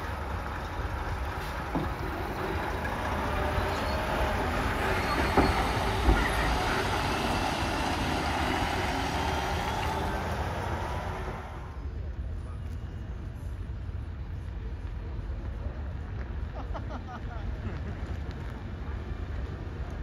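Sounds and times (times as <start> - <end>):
truck engine and tyre rumble: 0.0 - 20.0.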